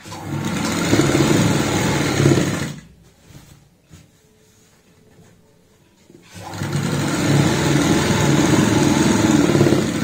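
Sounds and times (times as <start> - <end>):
sewing machine stitching: 0.0 - 2.8, 6.2 - 10.0.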